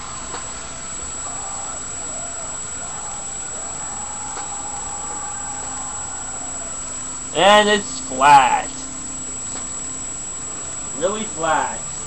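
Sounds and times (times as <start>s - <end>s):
faint high-pitched whine: 0.0s - 12.0s
microphone hiss: 0.0s - 12.0s.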